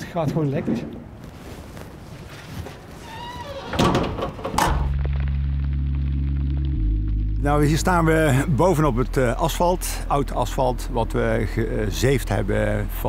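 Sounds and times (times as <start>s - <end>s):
music with deep bass note: 4.6s - 13.0s.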